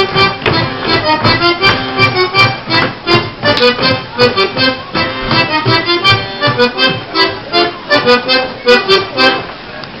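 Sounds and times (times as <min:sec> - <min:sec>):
sharp rhythmic knocks: 0:00.0 - 0:07.4
accordion playing folk dance tune: 0:00.0 - 0:09.7.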